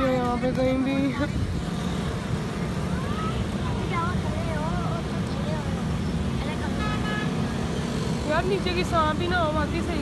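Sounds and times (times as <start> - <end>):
road traffic rumble: 0.0 - 10.0
vehicle horn: 6.7 - 7.6.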